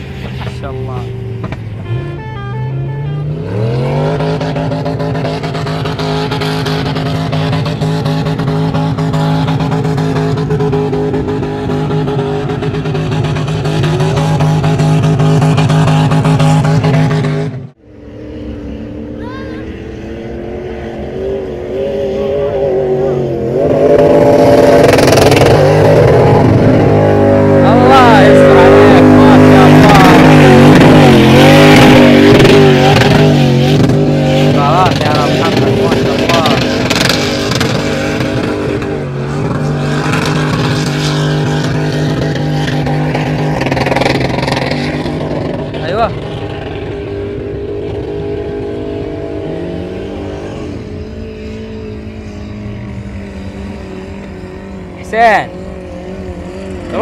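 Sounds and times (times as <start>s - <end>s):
engine at high revs: 0.0s - 57.0s.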